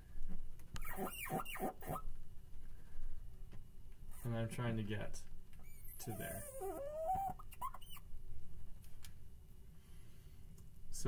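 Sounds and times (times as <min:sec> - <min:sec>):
chalk squeaking on a chalkboard: 0:00.8 - 0:02.0.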